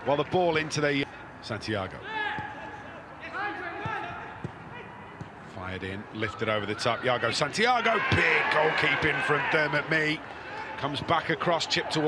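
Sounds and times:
footballers shouting: 6.4s - 12.0s.

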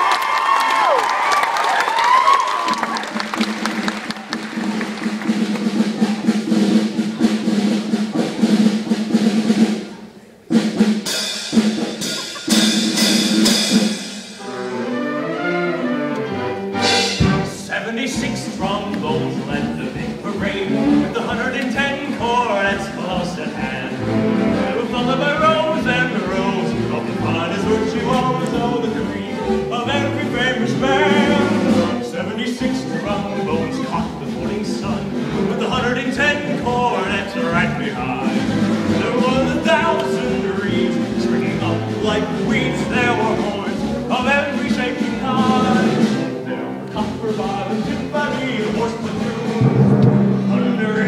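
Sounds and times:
steady beat: 3.2s - 14.4s
sharp drum strokes: 4.3s - 14.5s, 16.8s - 46.4s, 47.0s - 51.0s.

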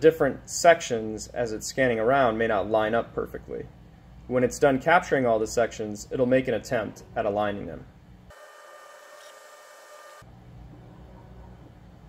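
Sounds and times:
faint steady hum: 0.0s - 12.0s
thin whining tones: 8.3s - 10.2s.

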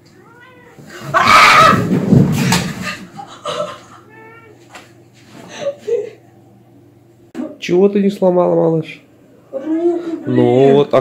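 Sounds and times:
woman wailing: 3.5s - 4.6s.

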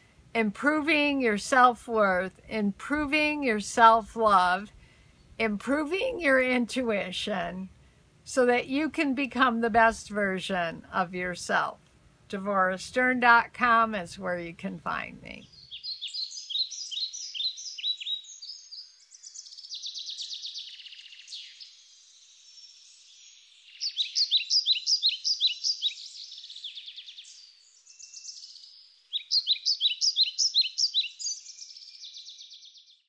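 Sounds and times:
songbirds chirping: 0.0s - 33.0s
soft buzzy bird trill: 15.5s - 33.0s.

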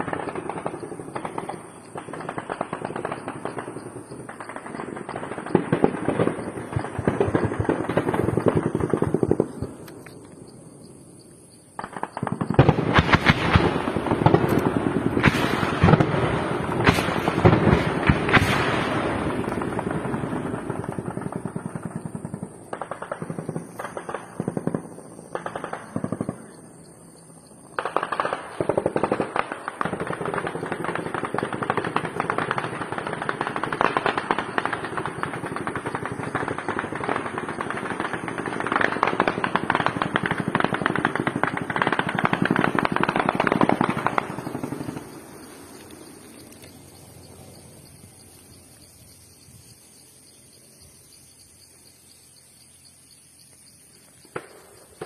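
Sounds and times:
automatic gunfire: 27.8s - 45.2s.

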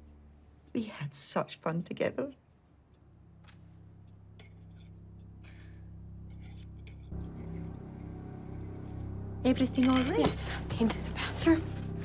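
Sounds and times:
low sustained drone: 5.4s - 12.0s
glass and cutlery clinking: 9.7s - 10.4s.

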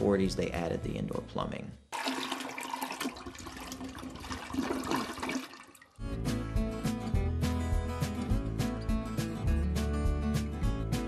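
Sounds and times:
toilet flushing: 1.9s - 6.0s.

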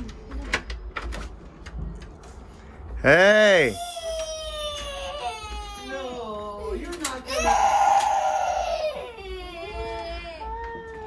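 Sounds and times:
toddler crying: 3.7s - 6.6s, 7.3s - 11.0s.

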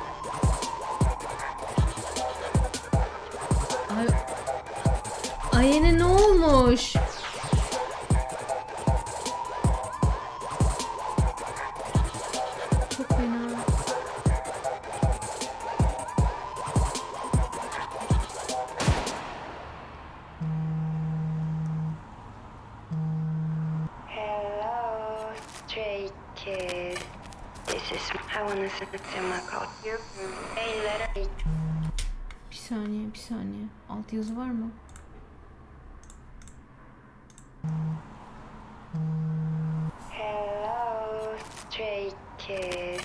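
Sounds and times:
low electronic tones: 20.4s - 22.0s, 22.9s - 23.9s, 31.1s - 32.3s, 37.6s - 38.1s, 38.9s - 39.9s
computer mouse clicks: 36.0s - 36.6s, 37.3s - 37.5s.

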